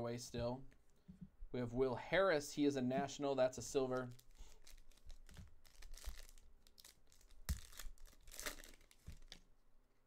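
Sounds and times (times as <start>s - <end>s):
foil wrapper crinkling: 3.9s - 9.4s
foil wrapper ripping: 4.1s - 9.4s.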